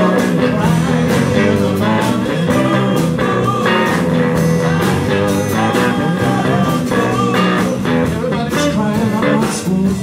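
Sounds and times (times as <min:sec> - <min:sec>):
blues band playing: 0:00.0 - 0:10.0
electric lead guitar: 0:00.0 - 0:10.0.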